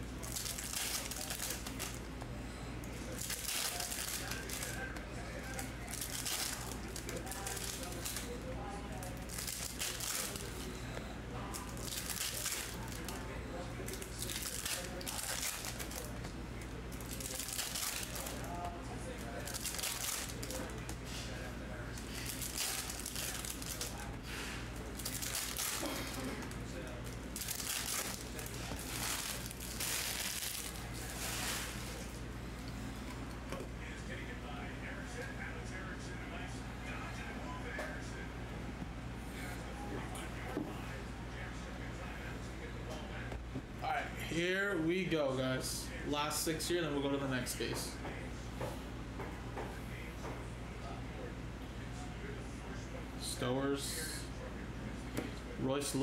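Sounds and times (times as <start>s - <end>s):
steady low hum: 0.0s - 56.0s
foil wrappers crinkling: 0.1s - 2.1s, 3.1s - 8.4s, 9.0s - 10.8s, 11.5s - 16.2s, 16.9s - 21.2s, 22.0s - 32.2s.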